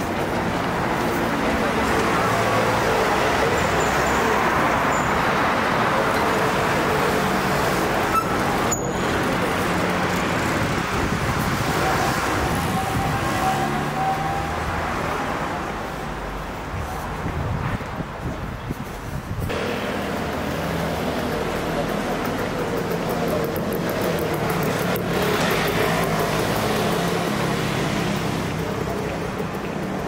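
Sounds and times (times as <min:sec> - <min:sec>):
street traffic noise: 0:00.0 - 0:30.0
motor scooter approaching: 0:19.5 - 0:30.0.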